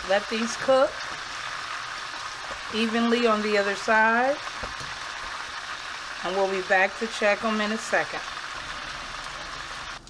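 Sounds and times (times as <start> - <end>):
oil sizzling in a skillet: 0.0 - 10.0.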